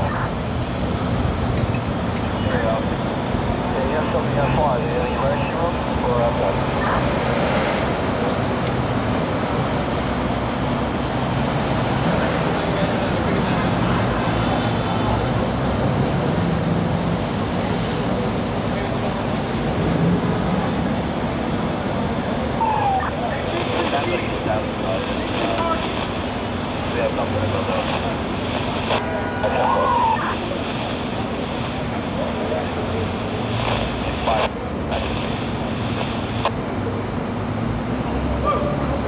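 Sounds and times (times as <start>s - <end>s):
road traffic noise: 0.0s - 39.0s
indistinct voices: 22.3s - 36.6s.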